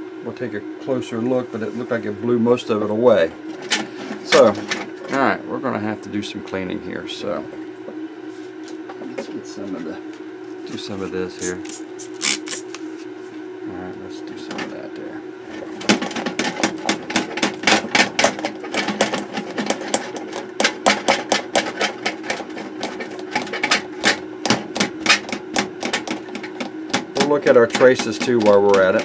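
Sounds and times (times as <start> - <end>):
steady low hum: 0.0 - 29.0
cloth scrubbing circuit board: 11.3 - 13.1.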